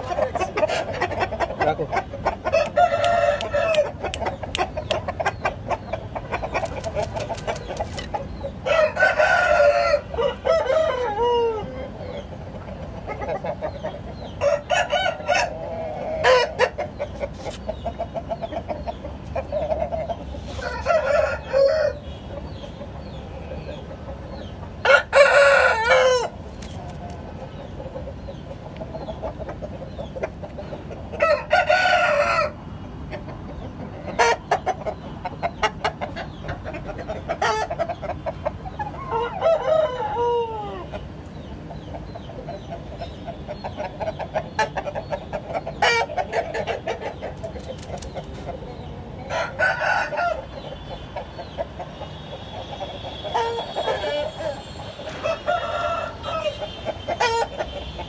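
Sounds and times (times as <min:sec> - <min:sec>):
rooster clucking: 0:00.0 - 0:58.0
rooster crowing: 0:02.5 - 0:03.9, 0:08.7 - 0:11.8, 0:20.6 - 0:22.0, 0:24.8 - 0:26.3, 0:31.2 - 0:32.6, 0:39.0 - 0:40.9, 0:49.3 - 0:50.5, 0:53.3 - 0:57.5.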